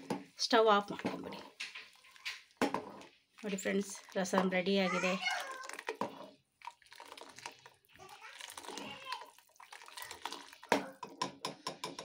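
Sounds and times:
soup bubbling in a pot: 0.0 - 12.0.

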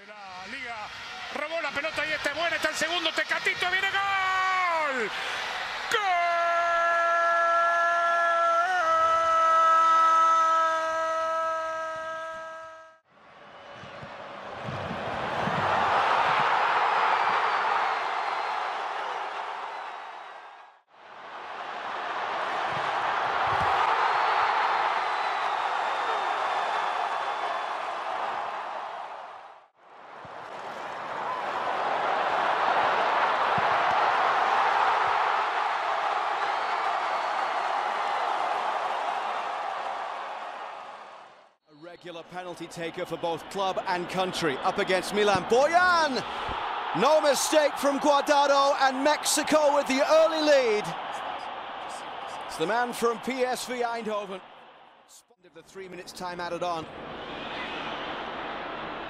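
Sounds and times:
stadium crowd noise: 0.0 - 59.0.

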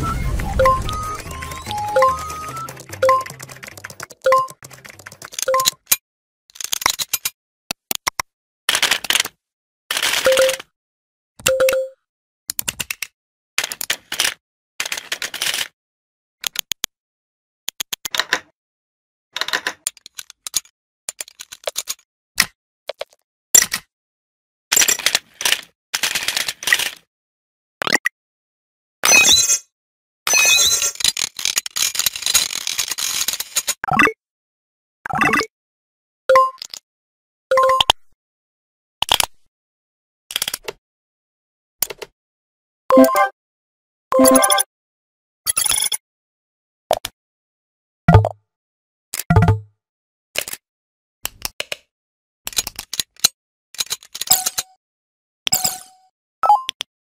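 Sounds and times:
computer mouse clicking rapidly: 2.0 - 5.9.

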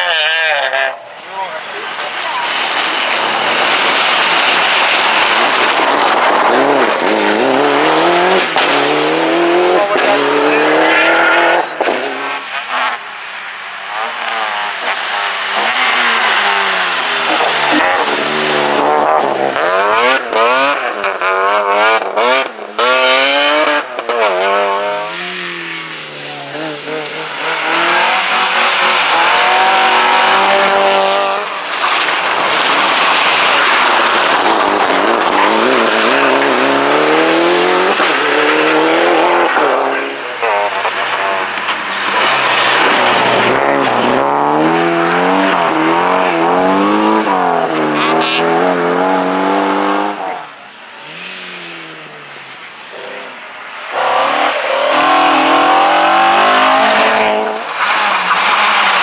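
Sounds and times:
rally cars revving past: 1.8 - 13.2, 13.9 - 59.0.

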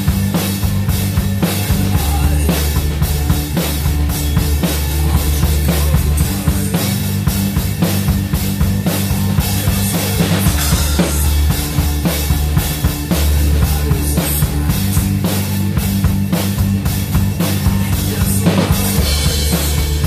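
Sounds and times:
drum kit steady beat: 0.0 - 20.0
sustained low bass notes: 0.0 - 20.0.

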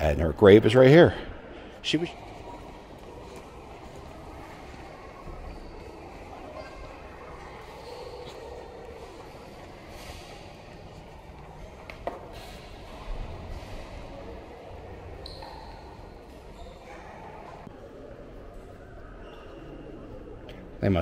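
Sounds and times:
distant murmur of voices: 0.0 - 21.0.

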